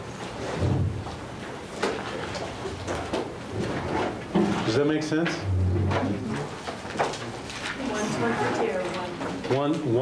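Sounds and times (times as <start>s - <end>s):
voices talking in a room: 1.8s - 10.0s.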